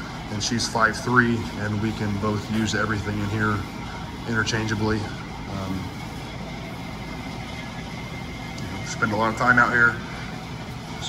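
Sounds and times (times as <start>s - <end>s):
machine hum and hiss: 0.0s - 11.0s.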